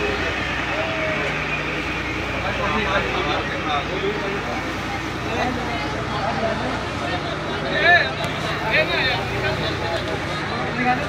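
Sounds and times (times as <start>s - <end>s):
ferry engine droning: 0.0s - 11.0s
passengers chattering: 0.0s - 11.0s.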